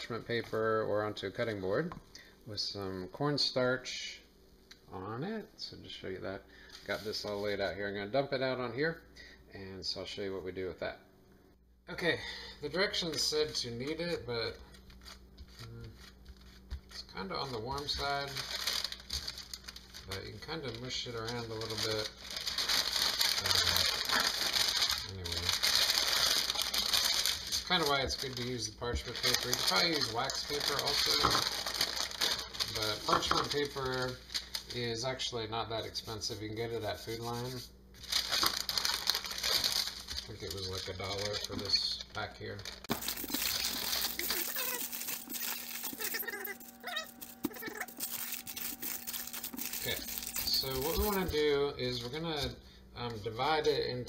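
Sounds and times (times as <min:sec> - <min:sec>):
parchment paper crinkling: 0:12.7 - 0:35.2, 0:35.8 - 0:52.5.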